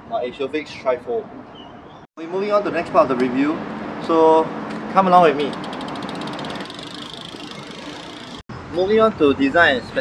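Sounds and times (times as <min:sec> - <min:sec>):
bike freewheel ticking: 0:05.3 - 0:08.4.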